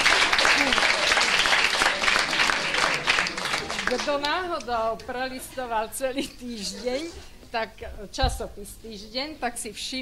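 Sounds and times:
audience clapping: 0:00.0 - 0:04.8.

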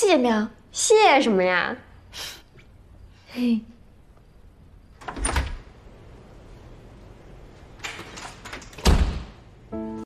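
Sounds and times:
door opening clicks and rattles: 0:05.0 - 0:05.7, 0:07.6 - 0:09.3
door thump: 0:08.8 - 0:09.4.

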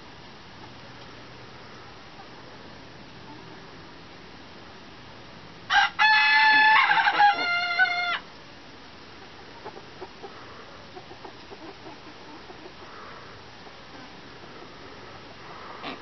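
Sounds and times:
rooster crowing: 0:05.7 - 0:08.2.

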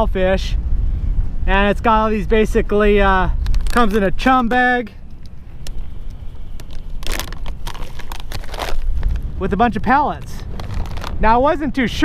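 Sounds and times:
wind rumble on microphone: 0:00.0 - 0:12.0
plastic pouch rustling: 0:03.4 - 0:04.2, 0:05.6 - 0:09.3, 0:10.1 - 0:11.3.

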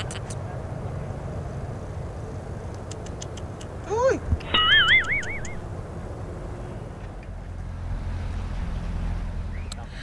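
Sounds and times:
highway traffic rumble: 0:00.0 - 0:10.0
warbling whistle: 0:04.5 - 0:05.6.

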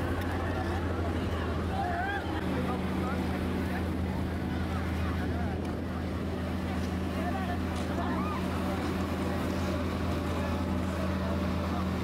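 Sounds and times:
low motor hum: 0:00.0 - 0:12.0
people chattering: 0:00.0 - 0:12.0.

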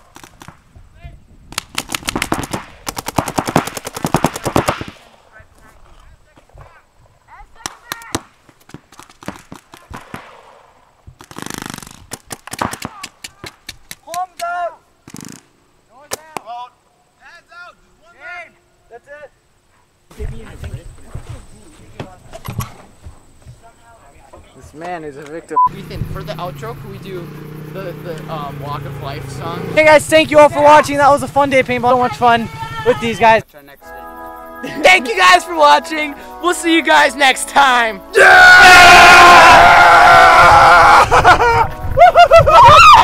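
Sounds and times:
paintball markers firing: 0:01.5 - 0:05.1, 0:07.6 - 0:10.4, 0:11.2 - 0:14.5, 0:15.1 - 0:15.5
indistinct voices talking: 0:23.6 - 0:43.0.

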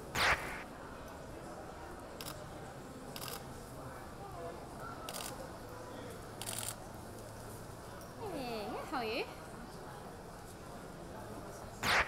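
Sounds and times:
faint background chatter: 0:00.0 - 0:12.0
camera shutters firing: 0:00.1 - 0:00.6.

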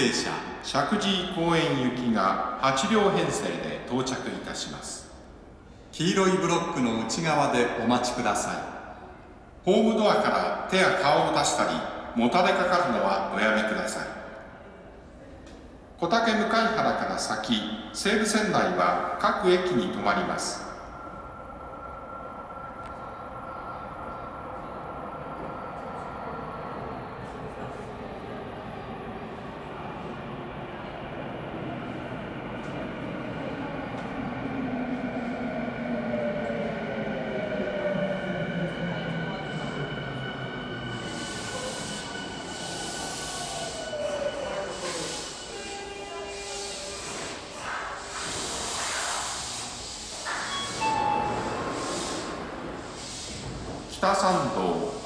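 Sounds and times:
brakes hissing and squealing: 0:40.9 - 0:53.6.

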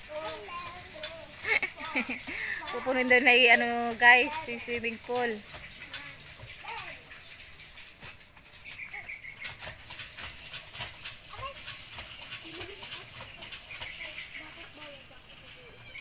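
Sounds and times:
water pump handle clicking and knocking: 0:00.0 - 0:15.4
water hissing: 0:00.0 - 0:16.0.

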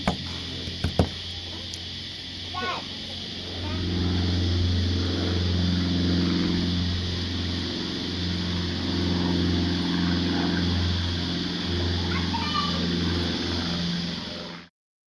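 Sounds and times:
motor engine running: 0:00.0 - 0:14.7.

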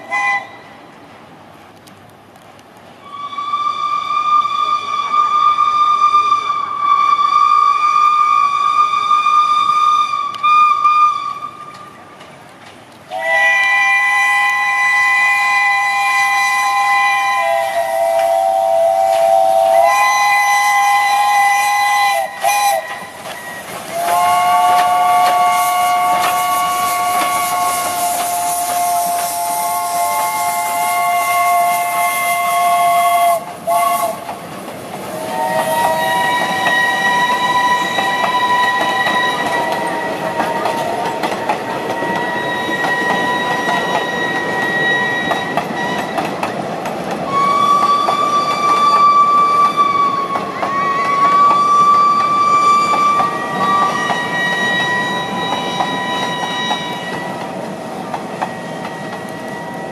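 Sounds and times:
steam whistle blasts: 0:00.0 - 0:00.8, 0:03.0 - 0:12.0, 0:13.1 - 0:34.3, 0:35.1 - 0:46.4, 0:47.3 - 0:57.5, 0:58.4 - 0:59.9
train wheels clattering on rails: 0:11.5 - 0:59.9.

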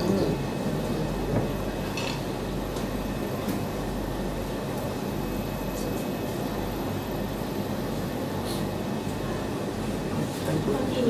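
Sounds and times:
low electrical hum: 0:00.0 - 0:11.0
low rumble of room noise: 0:00.0 - 0:11.0.

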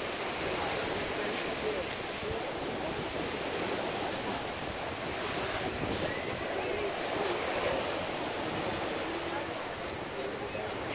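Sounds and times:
small waves on sandy beach: 0:00.0 - 0:10.9
wind on microphone: 0:00.0 - 0:10.9.

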